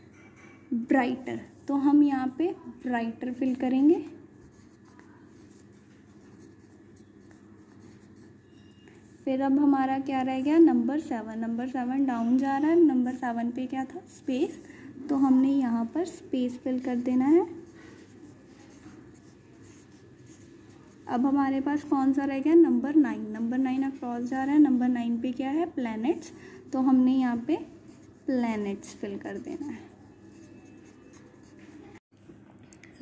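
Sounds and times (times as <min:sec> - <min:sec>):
pencil scratching on paper: 0:04.4 - 0:09.5, 0:14.0 - 0:22.2, 0:25.5 - 0:32.0.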